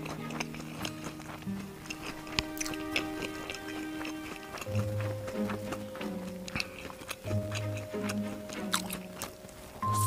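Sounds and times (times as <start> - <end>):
crunching fried food: 0.0 - 9.8
background music: 0.0 - 10.0.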